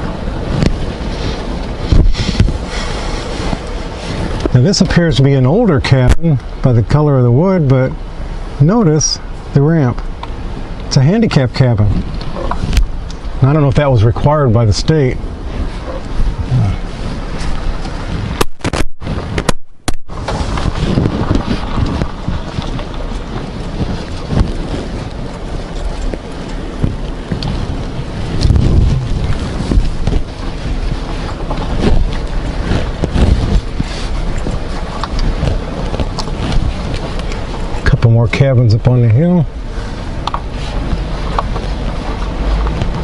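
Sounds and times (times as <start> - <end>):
vehicle driving rumble: 0.0 - 43.0
wind buffeting microphone: 0.0 - 43.0.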